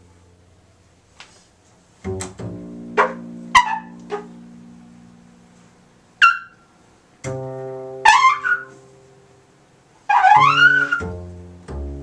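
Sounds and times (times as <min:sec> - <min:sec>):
bowed double bass note: 0:02.0 - 0:06.6, 0:07.2 - 0:12.0.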